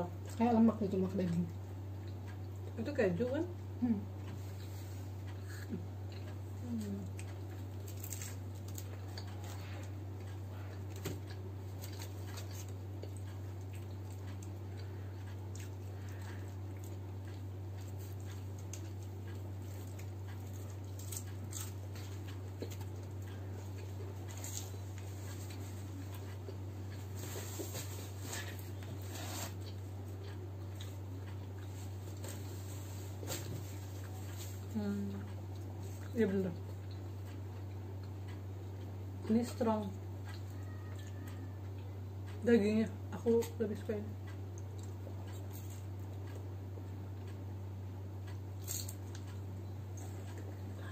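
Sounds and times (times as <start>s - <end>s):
steady low hum: 0.0s - 50.9s
chewing and mouth sounds: 4.2s - 39.6s
small clicks and crackles: 6.2s - 37.4s, 48.2s - 50.9s.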